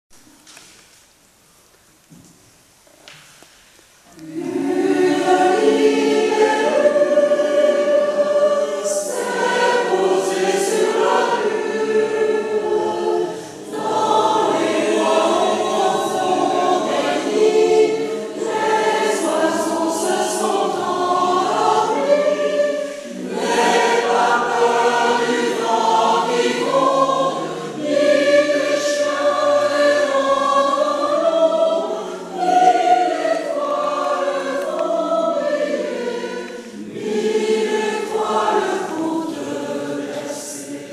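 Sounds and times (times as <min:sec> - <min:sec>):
choir singing a lullaby: 0:04.0 - 0:40.9.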